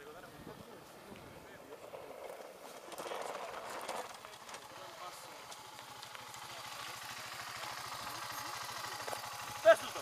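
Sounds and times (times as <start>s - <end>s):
dirt bike engine running: 1.7s - 10.0s.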